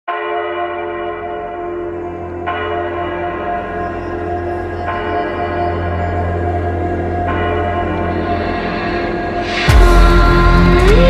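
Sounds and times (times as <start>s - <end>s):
bell-like tone: 2.2s - 11.0s
steady low drone: 3.3s - 11.0s.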